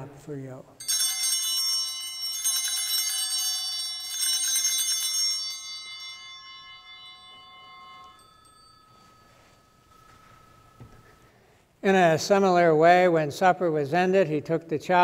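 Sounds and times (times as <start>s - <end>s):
altar bells ringing: 0.8s - 11.6s.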